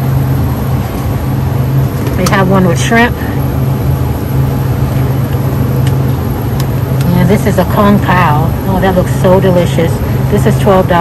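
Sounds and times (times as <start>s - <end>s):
refrigerated display case humming: 0.0s - 11.0s.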